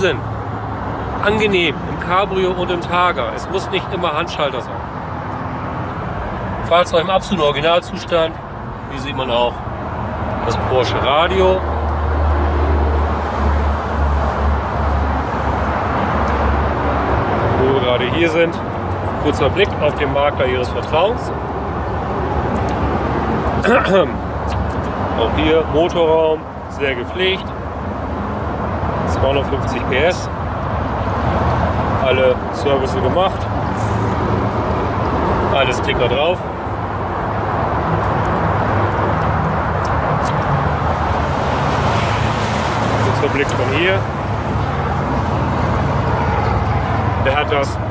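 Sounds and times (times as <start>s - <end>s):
outdoor noise: 0.0s - 47.9s
vehicle engine humming: 0.0s - 47.9s.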